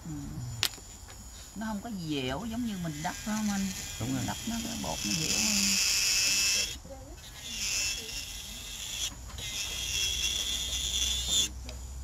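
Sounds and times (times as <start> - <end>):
electric nail drill whining: 2.3 - 11.9.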